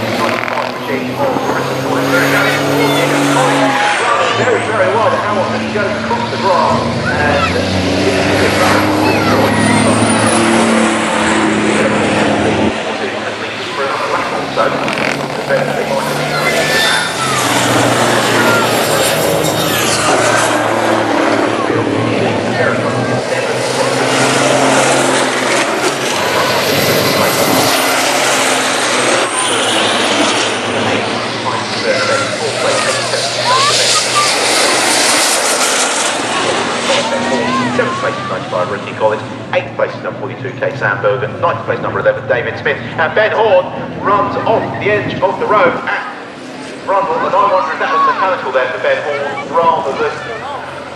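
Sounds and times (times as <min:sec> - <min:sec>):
diesel truck engines passing: 0:00.0 - 0:50.9.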